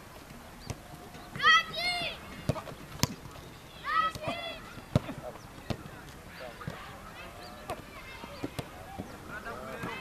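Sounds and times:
footballers calling and shouting: 0.0s - 10.0s.

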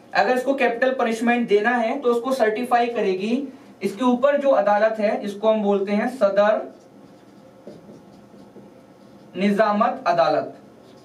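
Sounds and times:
marker scratching on whiteboard: 6.1s - 10.1s, 10.7s - 11.0s.

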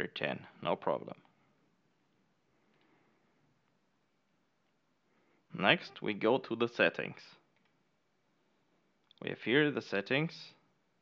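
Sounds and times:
spoken word: 5.5s - 7.4s.

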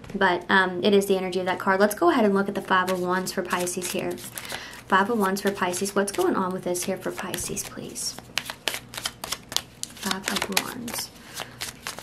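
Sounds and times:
cards being shuffled: 2.8s - 12.0s.

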